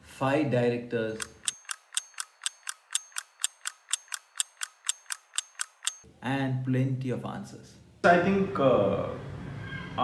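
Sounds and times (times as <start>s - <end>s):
rapid mechanical ticking: 1.2s - 6.0s.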